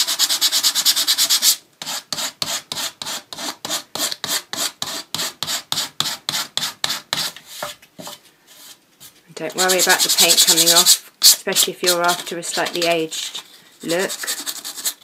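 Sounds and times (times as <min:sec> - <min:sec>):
sandpaper rubbing on paper edge: 0:09.5 - 0:15.0.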